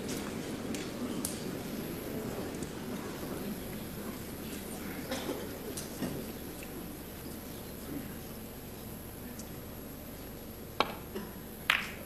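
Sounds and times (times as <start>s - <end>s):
audience murmur: 0.0s - 11.6s.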